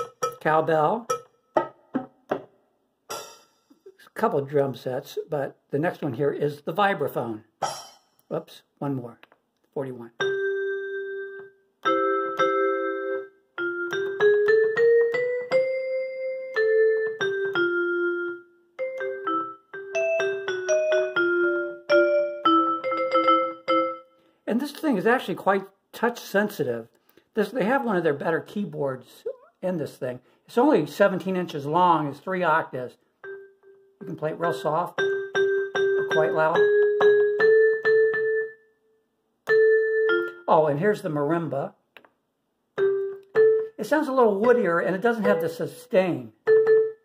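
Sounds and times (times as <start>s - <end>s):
keyboard vibraphone melody: 0.0s - 0.5s, 1.1s - 1.7s, 10.2s - 24.2s, 33.2s - 38.7s, 39.5s - 40.6s, 42.8s - 43.8s, 44.4s - 47.0s.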